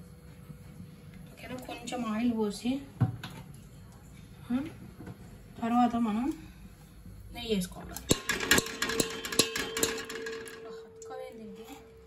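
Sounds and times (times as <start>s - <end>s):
metal spoon tapping pot rim: 8.0s - 11.1s
pot ringing: 8.1s - 12.0s.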